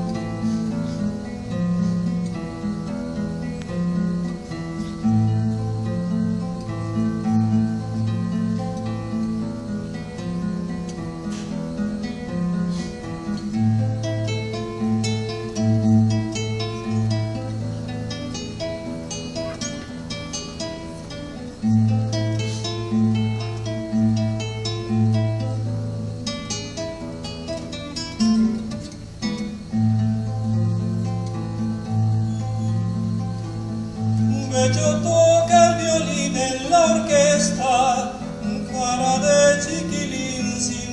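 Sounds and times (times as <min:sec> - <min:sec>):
acoustic guitar: 0:00.0 - 0:40.9.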